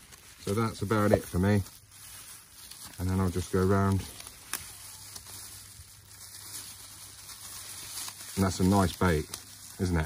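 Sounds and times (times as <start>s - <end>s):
gloved hands rustling: 0.0s - 10.0s.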